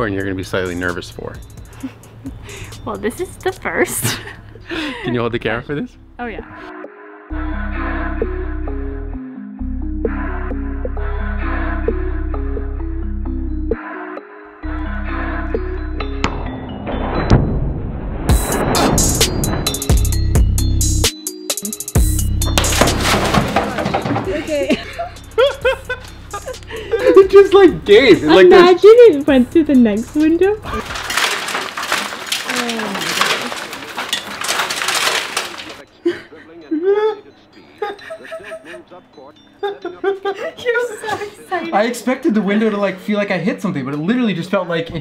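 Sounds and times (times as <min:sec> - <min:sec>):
background music: 0:00.0 - 0:45.0
people talking: 0:02.8 - 0:04.2, 0:04.8 - 0:06.5, 0:24.2 - 0:25.0, 0:26.9 - 0:30.8, 0:36.1 - 0:45.0
people laughing: 0:03.8 - 0:05.4, 0:23.6 - 0:28.5, 0:36.0 - 0:42.7
glass shattering: 0:16.4 - 0:20.9, 0:22.0 - 0:27.2, 0:30.6 - 0:35.9
broken glass tinkling: 0:22.3 - 0:27.2, 0:30.6 - 0:35.9.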